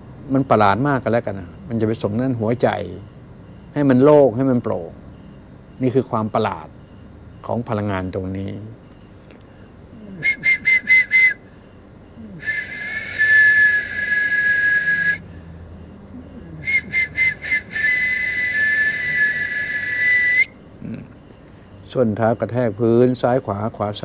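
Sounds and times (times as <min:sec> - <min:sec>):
two-tone whistle blasts: 0:10.2 - 0:11.8, 0:12.4 - 0:15.4, 0:16.6 - 0:20.6.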